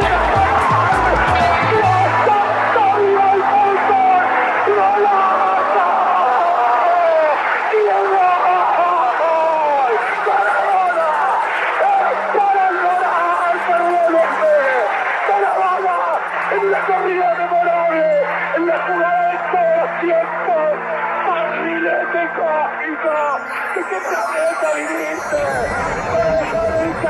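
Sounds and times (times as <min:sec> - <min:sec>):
background music low notes: 0:00.0 - 0:08.3.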